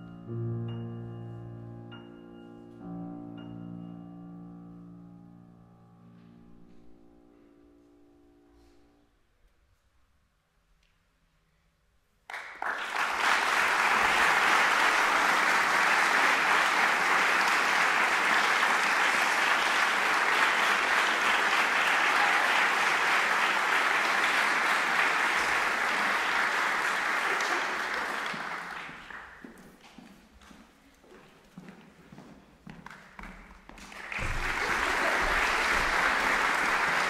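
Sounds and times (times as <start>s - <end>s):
audience applause: 12.3s - 29.5s, 33.2s - 37.0s.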